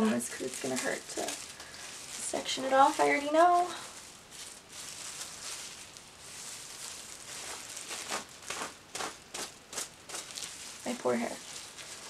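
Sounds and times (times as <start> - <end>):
comb scraping through hair: 0.0 - 12.0.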